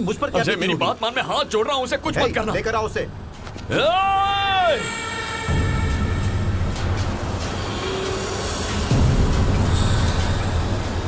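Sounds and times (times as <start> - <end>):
low rumbling film score: 0.0 - 11.0.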